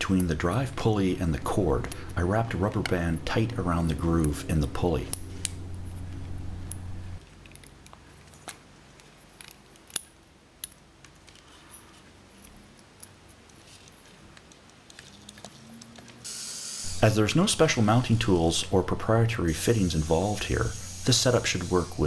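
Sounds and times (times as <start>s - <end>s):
low steady hum: 0.0s - 13.3s, 16.8s - 22.0s.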